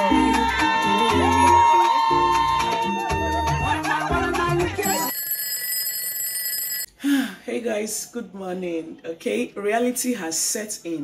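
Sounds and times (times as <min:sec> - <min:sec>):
alarm clock ringing: 0:04.8 - 0:06.9.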